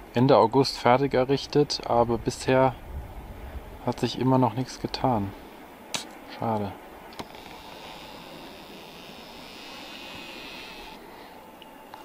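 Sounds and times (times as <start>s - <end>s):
wind hiss: 0.0s - 12.0s
thin high hiss: 5.8s - 6.4s, 7.1s - 12.0s.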